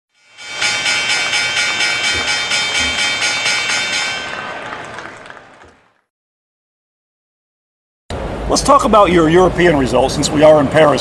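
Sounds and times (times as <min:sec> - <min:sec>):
pulsing synthesized chord: 0:00.2 - 0:04.7.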